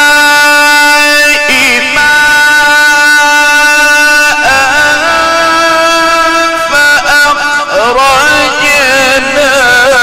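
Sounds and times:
man reciting long held note: 0.0 - 10.0.

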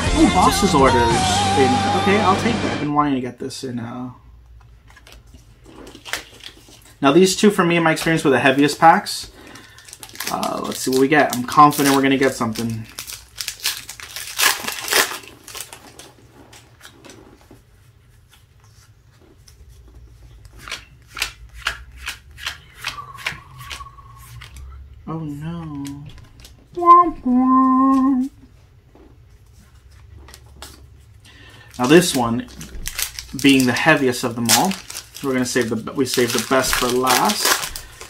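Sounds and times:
person humming or murmuring: 0.0 - 2.8, 25.0 - 28.4
foil wrapper tearing and crinkling: 4.9 - 7.0, 8.6 - 17.4, 29.9 - 38.0
cards flipping clicks: 20.6 - 24.6.

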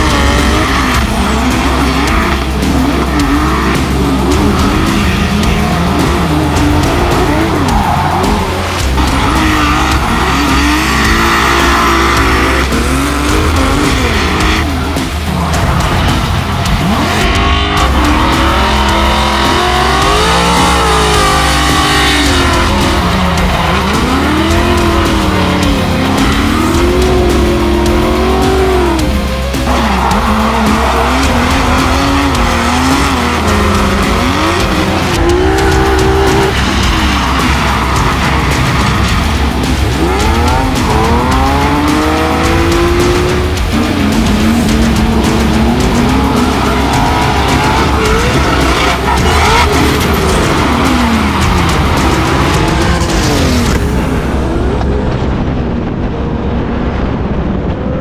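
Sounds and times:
background music with low beat: 0.0 - 56.1
car engines revving: 0.0 - 58.0.

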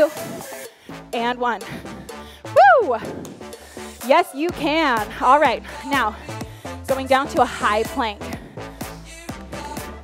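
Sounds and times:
upbeat background music: 0.0 - 10.0
woman whooping: 2.6 - 3.1.

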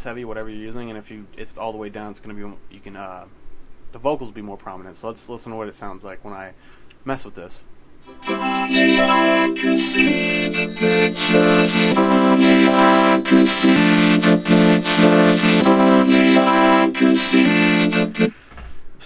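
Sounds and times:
vocoded synth vocal: 8.1 - 18.3.

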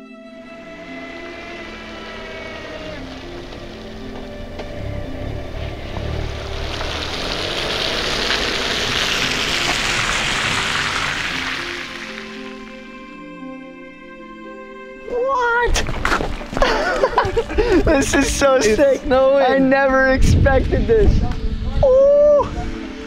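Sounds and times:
slow background music: 0.0 - 23.0
low rumble: 0.4 - 12.7
car road and wind noise: 0.4 - 13.0, 15.5 - 23.0.

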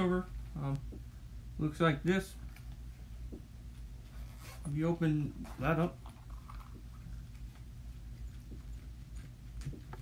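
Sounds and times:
low steady hum: 0.0 - 10.0
small clicks and rustles: 6.0 - 10.0.

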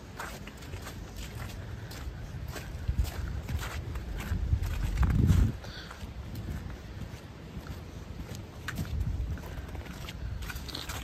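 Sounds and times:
footsteps on wet snow and leaves: 0.0 - 11.0.

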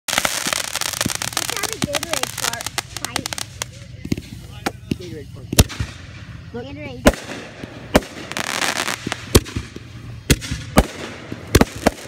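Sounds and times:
fireworks crackling pops: 0.1 - 12.0
loud firework bang: 7.0 - 12.0.

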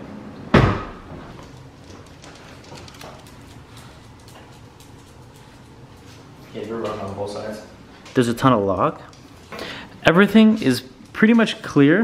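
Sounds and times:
heavy thud: 0.5 - 1.2
faint clicks and taps: 1.4 - 8.2.

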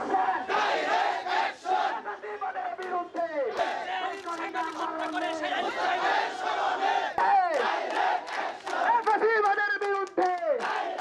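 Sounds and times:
crowd chanting slogans: 0.0 - 9.0, 10.6 - 11.0.

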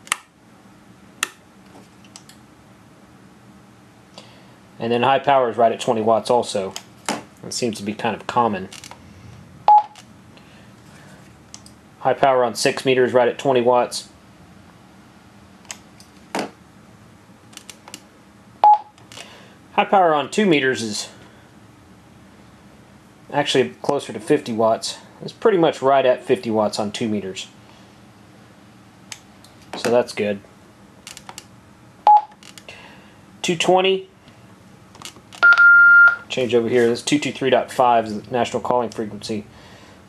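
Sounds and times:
radio key beep: 9.7 - 10.0, 35.4 - 36.3.

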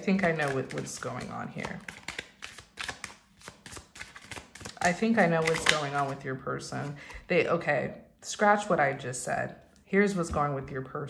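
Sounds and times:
cards being shuffled: 0.1 - 6.2.

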